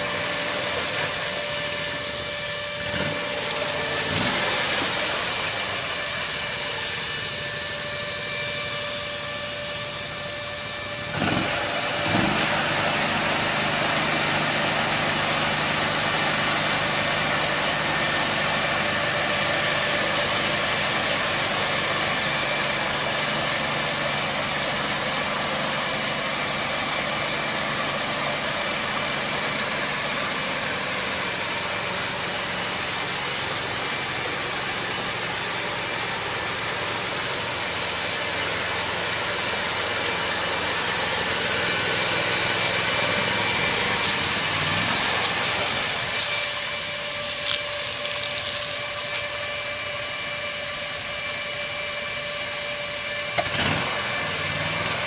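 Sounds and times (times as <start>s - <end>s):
tracked vehicle engine running: 0.0s - 55.0s.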